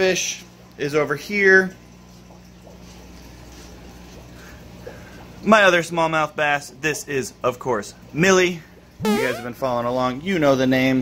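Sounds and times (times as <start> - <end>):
aquarium pumps humming: 0.0 - 11.0.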